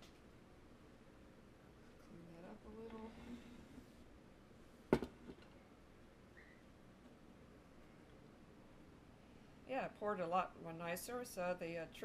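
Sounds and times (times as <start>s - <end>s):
hard object knocking on counter: 4.9s - 5.4s.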